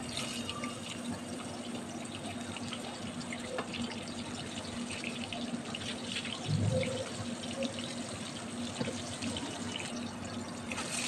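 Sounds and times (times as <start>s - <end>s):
vegetables frying in oil: 0.0s - 11.0s.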